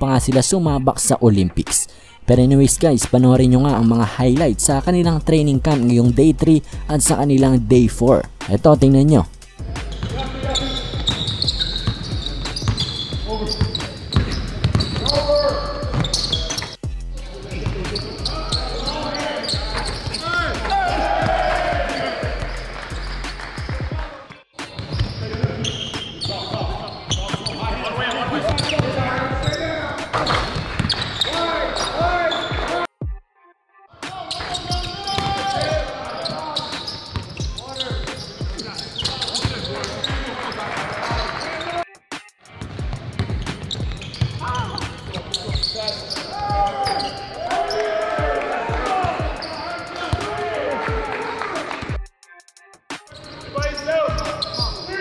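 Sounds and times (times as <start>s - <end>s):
players' voices: 0.0s - 32.9s, 34.0s - 52.0s, 53.1s - 55.0s
sneaker squeaks: 9.8s - 16.8s, 17.6s - 20.7s, 21.9s - 23.9s, 24.6s - 32.9s, 34.0s - 41.8s, 42.6s - 47.9s, 48.9s - 50.4s, 53.1s - 55.0s
basketballs bouncing on hardwood: 10.0s - 16.6s, 26.5s - 31.2s, 34.4s - 36.4s, 42.6s - 46.8s.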